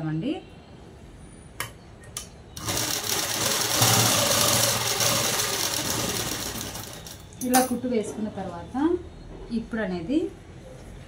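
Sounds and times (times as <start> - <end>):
sewing machine running: 2.6 - 7.2.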